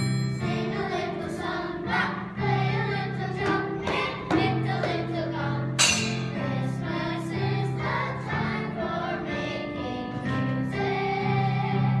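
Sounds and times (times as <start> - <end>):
children's choir singing: 0.4 - 12.0.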